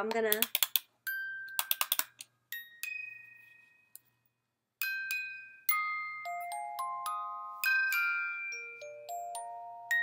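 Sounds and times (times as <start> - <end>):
music box plucked notes: 4.8 - 10.0.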